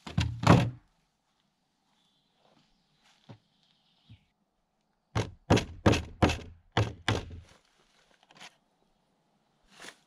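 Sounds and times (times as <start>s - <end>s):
hammer driving nails into wood: 5.2s - 7.4s.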